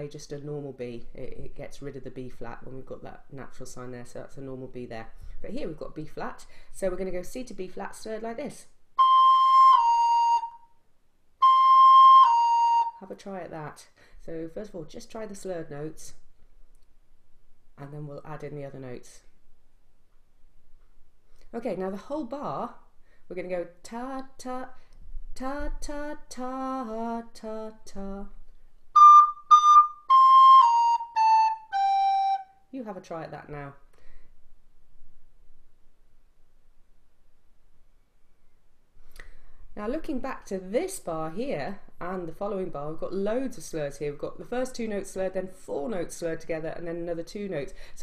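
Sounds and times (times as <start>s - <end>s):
recorder playing notes: 9.0s - 10.7s, 11.4s - 13.0s, 29.0s - 32.6s.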